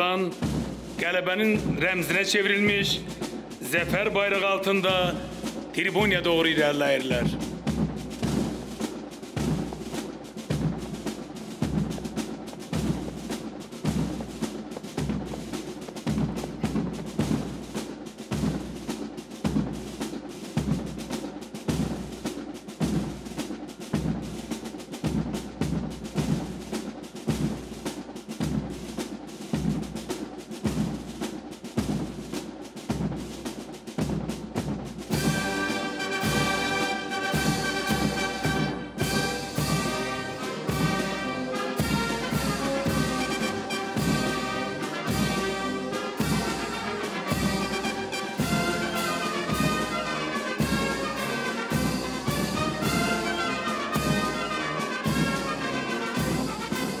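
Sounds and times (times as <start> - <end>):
brass band playing: 0.0 - 57.0
marching drums: 0.0 - 57.0.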